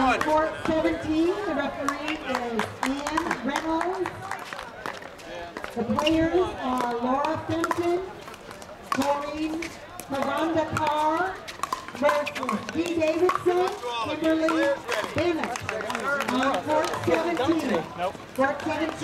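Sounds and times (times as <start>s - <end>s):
paddles hitting plastic ball: 1.8s - 19.0s.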